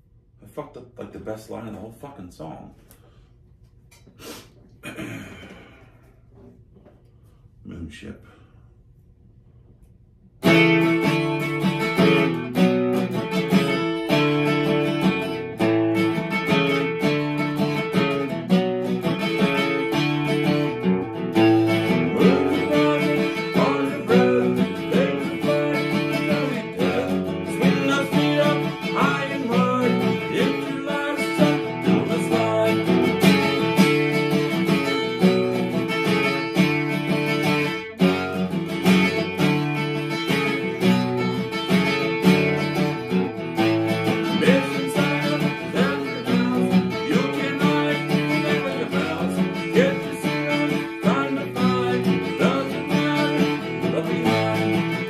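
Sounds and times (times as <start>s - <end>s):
acoustic guitar strummed fast: 10.4s - 55.0s.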